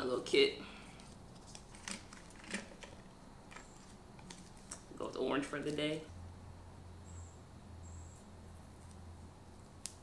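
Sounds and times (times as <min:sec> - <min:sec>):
bandage box clicking and rustling: 0:01.4 - 0:04.8.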